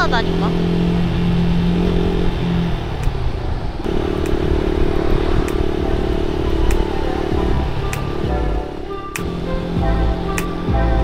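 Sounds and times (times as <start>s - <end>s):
motorcycle engine drone: 0.0s - 11.0s
wind rumble on microphone: 1.2s - 8.6s.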